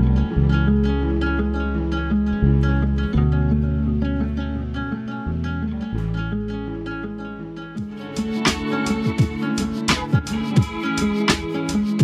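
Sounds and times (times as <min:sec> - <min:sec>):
held bass notes: 0:00.0 - 0:12.0
plucked acoustic guitar: 0:00.0 - 0:12.0.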